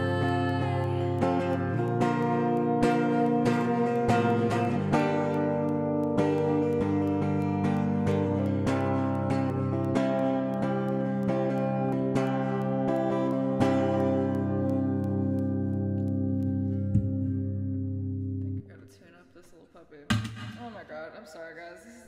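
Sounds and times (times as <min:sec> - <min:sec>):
acoustic guitar strumming chords: 0:00.0 - 0:18.7.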